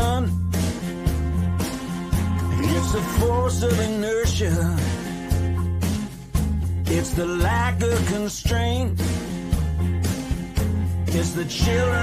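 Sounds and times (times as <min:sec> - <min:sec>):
drum beat: 0:00.0 - 0:12.0
guitar: 0:00.0 - 0:12.0
steady bass notes: 0:00.0 - 0:12.0.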